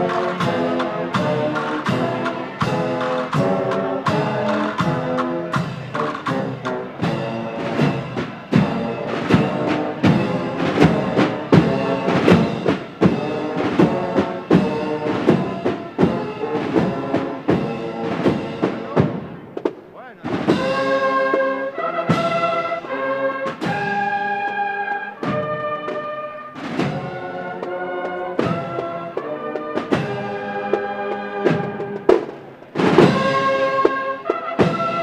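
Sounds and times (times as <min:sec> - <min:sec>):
brass chords: 0:00.0 - 0:32.1, 0:32.8 - 0:35.0
march drum strokes: 0:00.0 - 0:35.0.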